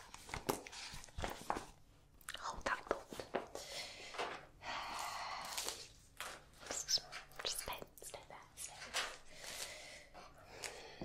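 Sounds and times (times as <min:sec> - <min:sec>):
woman whispering: 0:02.3 - 0:03.2, 0:06.6 - 0:09.0.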